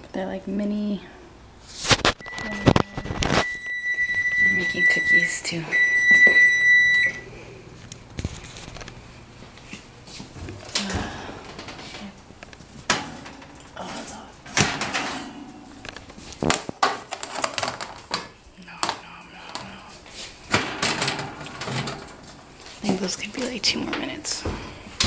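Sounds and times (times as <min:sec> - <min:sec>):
indistinct voices: 0:10.5 - 0:12.3, 0:12.9 - 0:16.2, 0:18.5 - 0:22.0
metal baking sheet clattering: 0:12.8 - 0:15.5, 0:20.4 - 0:24.5.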